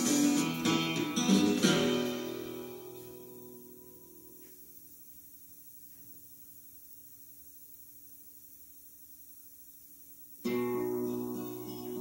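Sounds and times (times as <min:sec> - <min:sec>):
acoustic guitar strummed chords: 0:00.0 - 0:04.6, 0:10.4 - 0:12.0.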